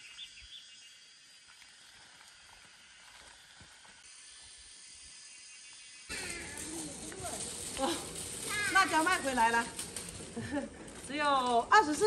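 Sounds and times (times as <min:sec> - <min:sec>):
insects buzzing: 0:00.0 - 0:12.0.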